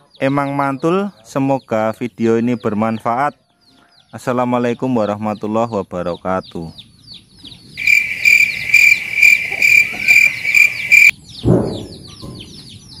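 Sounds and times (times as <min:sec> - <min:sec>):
loud high insect chirping: 0:07.8 - 0:11.1.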